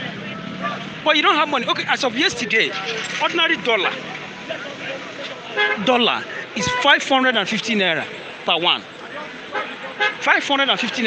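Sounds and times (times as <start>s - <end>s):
busy street traffic: 0.0s - 11.0s
vehicle horn tooting: 5.5s - 6.0s, 6.6s - 7.0s, 9.5s - 10.4s.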